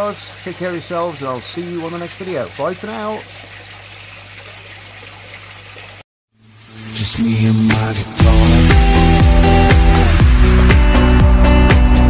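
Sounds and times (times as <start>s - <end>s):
water trickling: 0.0s - 6.0s
music: 6.4s - 12.0s.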